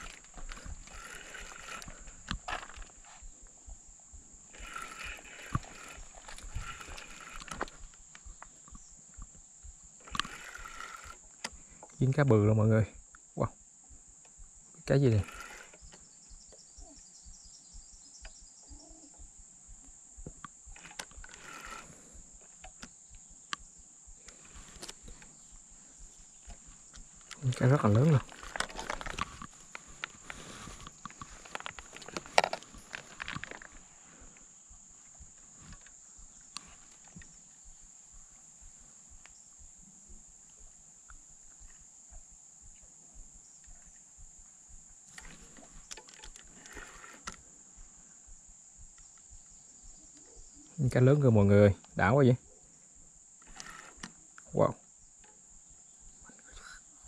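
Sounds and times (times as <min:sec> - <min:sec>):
insects droning: 0:00.0 - 0:57.0
faint clicks: 0:04.5 - 0:12.0, 0:18.2 - 0:18.4, 0:19.8 - 0:44.4.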